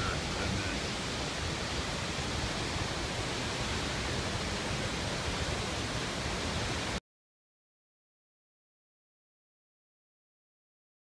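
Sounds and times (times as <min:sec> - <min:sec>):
creek running: 0:00.0 - 0:07.0
waterfall rushing: 0:00.0 - 0:07.0.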